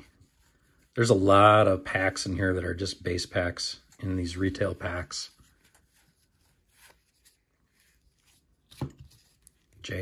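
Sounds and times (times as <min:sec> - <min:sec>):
trading cards sliding and rustling: 0:03.8 - 0:09.8.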